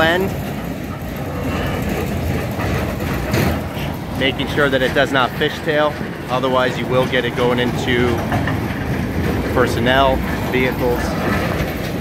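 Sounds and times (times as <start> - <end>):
towed steel barriers rumbling: 0.0 - 12.0.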